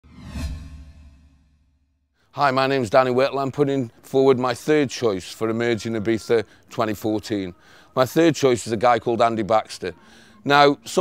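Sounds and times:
deep boom: 0:00.0 - 0:02.0
whoosh: 0:00.0 - 0:02.0.

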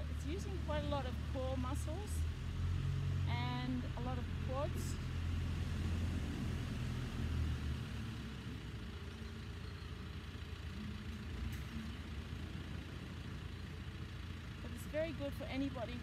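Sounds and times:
faint outdoor background noise: 0:00.0 - 0:16.0
low engine hum: 0:00.0 - 0:16.0.

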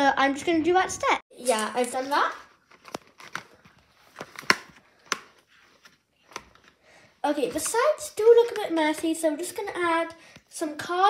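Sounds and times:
paper crackling and tapping on desk: 0:01.6 - 0:06.8, 0:07.5 - 0:09.2.

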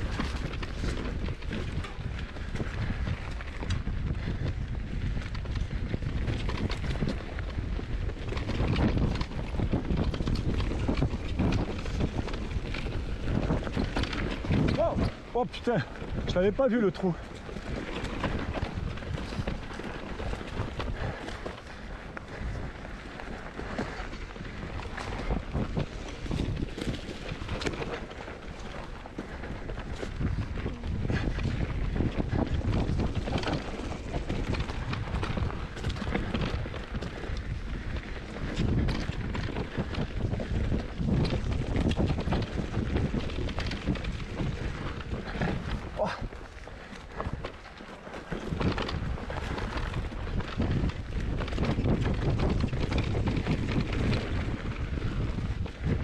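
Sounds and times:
bike rattling and clicking: 0:00.0 - 0:56.0
tyres rolling over dirt: 0:00.0 - 0:56.0
wind over microphone: 0:00.0 - 0:56.0.

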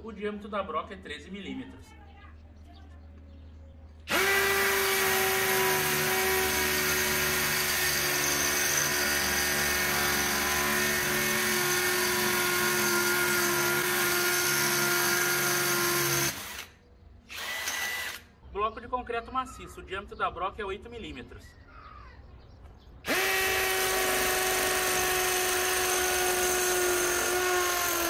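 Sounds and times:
hammer drill boring into concrete: 0:04.1 - 0:16.7, 0:17.3 - 0:18.3, 0:23.1 - 0:28.0.

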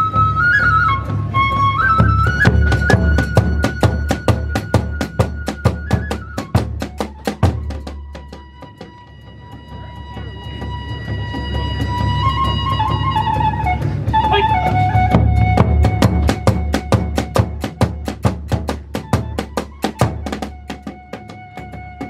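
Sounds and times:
bamboo flute melody: 0:00.0 - 0:22.0
large taiko drum: 0:00.0 - 0:22.0.

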